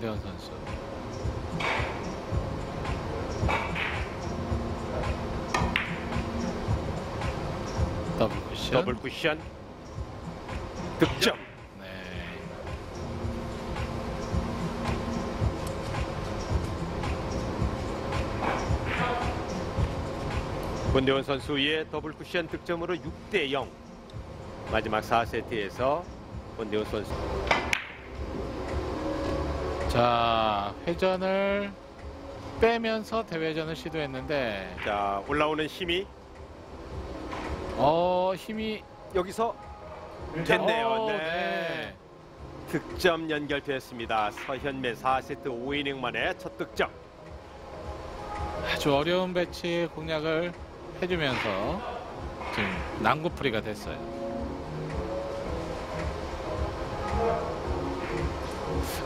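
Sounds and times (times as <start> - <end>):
low hall background noise: 0.0 - 59.0
cue striking ball: 5.5 - 6.4, 27.4 - 28.1
billiard balls clicking: 27.5 - 28.0.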